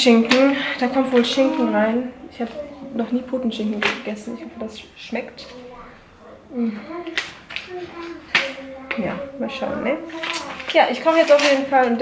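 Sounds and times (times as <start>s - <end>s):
faint murmuring voice: 0.6s - 10.8s.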